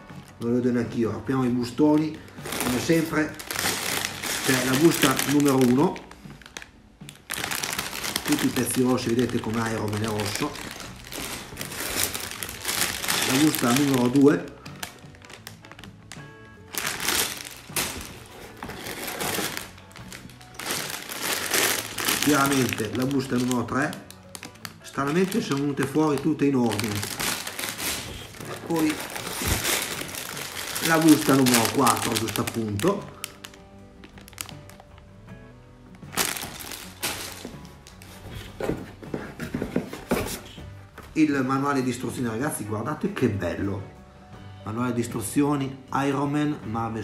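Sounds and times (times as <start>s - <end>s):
background music: 0.0s - 47.0s
plastic bags crinkling: 1.6s - 35.0s, 36.0s - 38.8s
cardboard box handled: 16.7s - 19.8s, 36.2s - 40.6s.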